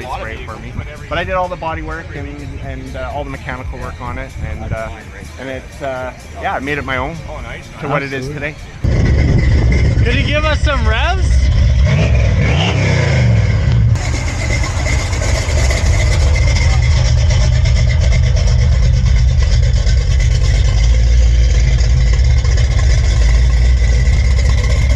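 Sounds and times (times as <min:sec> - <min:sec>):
car engine revving and running: 0:07.2 - 0:24.9.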